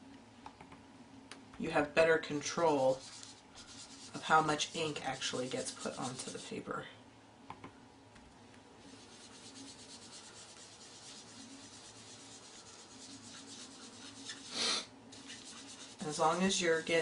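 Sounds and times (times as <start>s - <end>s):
sponge scrubbing on cardstock: 2.5s - 6.6s, 8.8s - 17.0s.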